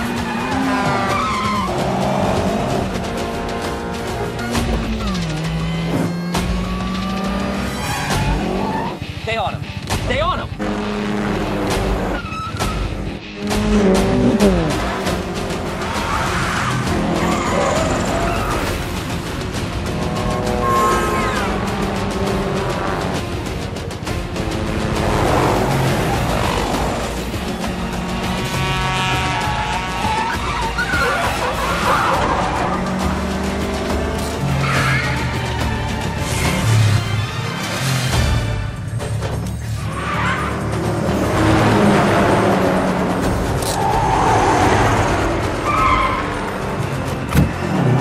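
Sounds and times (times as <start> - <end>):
tyres squealing: 0.0 - 2.2, 28.5 - 33.3
car engines revving: 0.0 - 48.0
film score music: 0.0 - 48.0
tyre squeal: 12.1 - 12.9.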